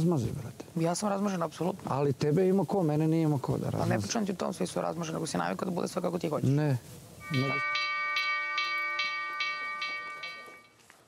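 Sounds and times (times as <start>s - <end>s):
bell-like chime tinkling: 7.2s - 10.8s.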